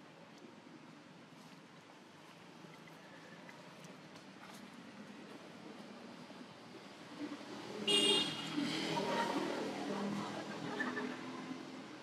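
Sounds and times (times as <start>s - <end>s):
vehicle passing: 7.2s - 11.8s.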